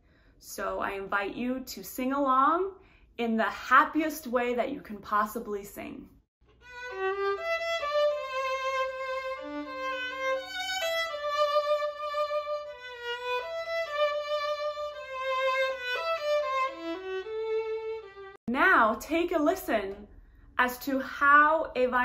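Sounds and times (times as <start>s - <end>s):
solo violin melody: 6.5s - 18.4s.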